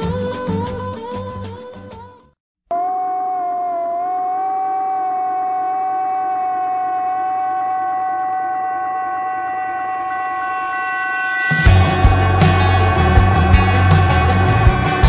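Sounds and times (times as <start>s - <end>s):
higher tone: 2.7s - 15.0s
long held musical note: 2.7s - 15.0s.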